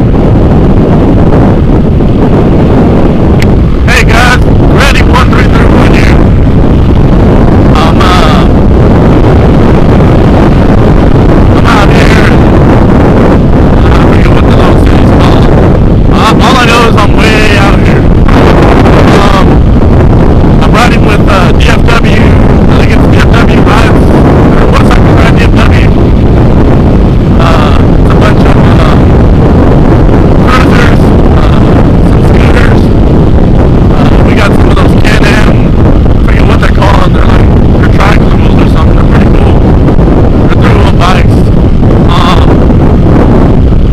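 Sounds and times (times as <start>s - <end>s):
wind buffeting microphone: 0.0s - 43.9s.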